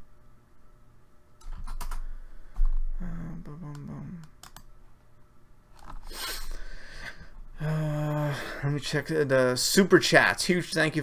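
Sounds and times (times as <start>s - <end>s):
computer keyboard keys clicking: 1.4s - 2.0s, 4.2s - 4.7s.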